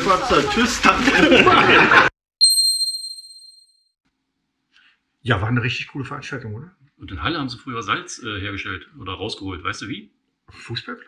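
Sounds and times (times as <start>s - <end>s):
high chime ringing: 2.4s - 3.9s.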